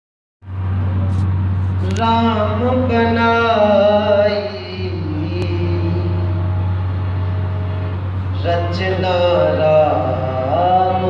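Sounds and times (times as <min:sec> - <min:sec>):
sound system hum: 0:00.4 - 0:11.0
harmonium note: 0:00.5 - 0:11.0.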